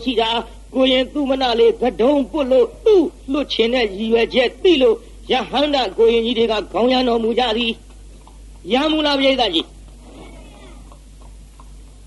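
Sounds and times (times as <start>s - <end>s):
low steady hum: 0.0s - 12.0s
cat meowing faintly: 10.0s - 10.9s.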